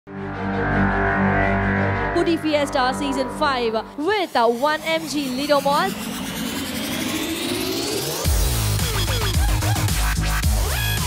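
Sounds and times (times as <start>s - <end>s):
music: 0.1s - 11.0s
electronic whooshing riser: 0.4s - 9.4s.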